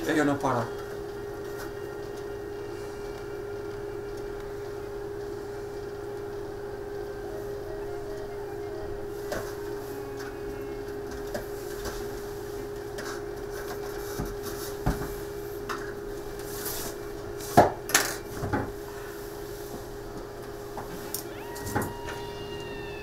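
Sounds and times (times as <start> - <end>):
steady machine hum: 0.0 - 23.0.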